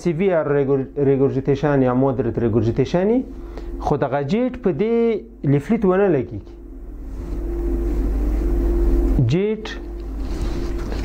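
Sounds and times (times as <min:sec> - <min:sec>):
low machine rumble: 0:00.0 - 0:11.0
steady hum: 0:00.0 - 0:11.0.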